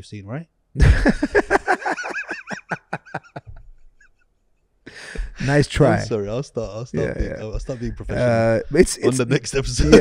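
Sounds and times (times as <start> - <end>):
man laughing: 0.8 - 3.8, 7.0 - 10.0.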